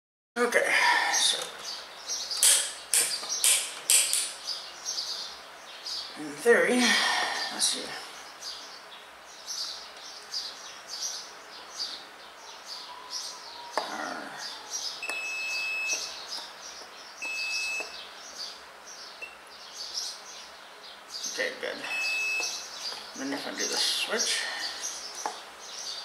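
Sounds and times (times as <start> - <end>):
constant high chirping: 7.3 - 26.0
multimeter continuity beeps: 15.0 - 16.2, 17.2 - 18.0, 19.2 - 19.4, 21.8 - 22.6.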